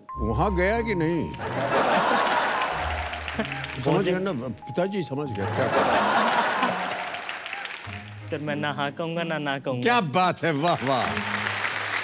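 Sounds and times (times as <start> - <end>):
audience laughing and applauding: 1.3 - 4.3, 5.4 - 8.1, 10.5 - 12.0.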